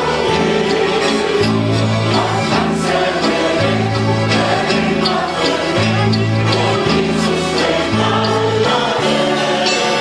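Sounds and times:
accordion band playing gospel: 0:00.0 - 0:10.0
group of voices singing: 0:00.0 - 0:10.0.

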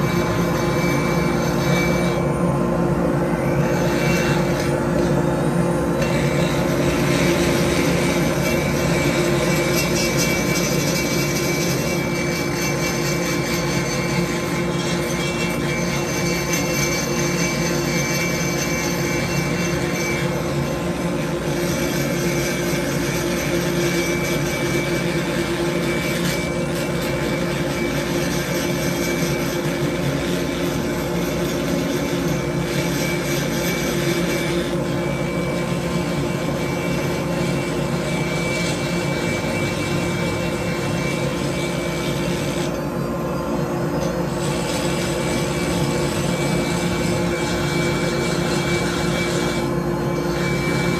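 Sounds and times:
rotary grinder whining on metal: 0:00.0 - 0:50.9.

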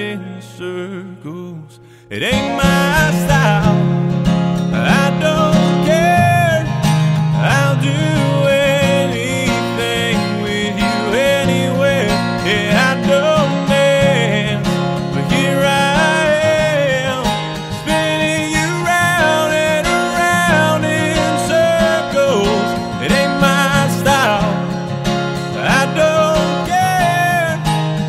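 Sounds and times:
man singing: 0:00.0 - 0:27.9
acoustic guitar strummed: 0:00.0 - 0:28.0.

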